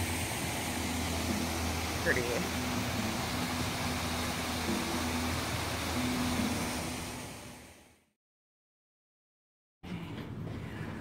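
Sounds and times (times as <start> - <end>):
fountain water splashing: 0.0 - 7.4.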